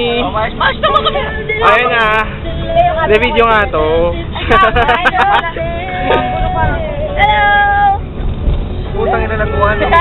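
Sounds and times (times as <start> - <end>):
moving vehicle rumble: 0.0 - 10.0.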